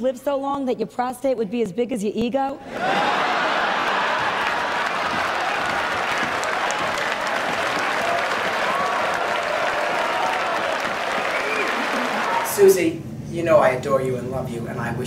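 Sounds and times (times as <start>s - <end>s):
audience laughing: 2.7s - 9.9s, 10.6s - 12.4s
audience applauding: 2.8s - 12.7s.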